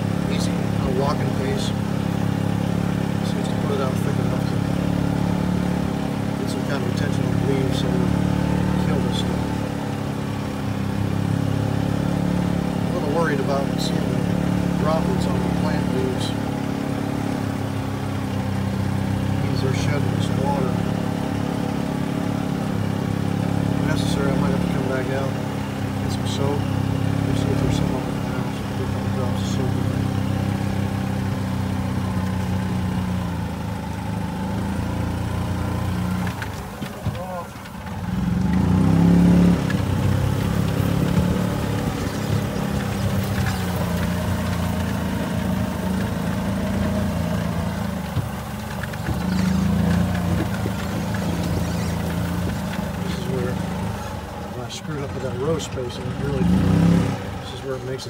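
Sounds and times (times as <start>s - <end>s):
golf cart engine running: 0.0s - 58.0s.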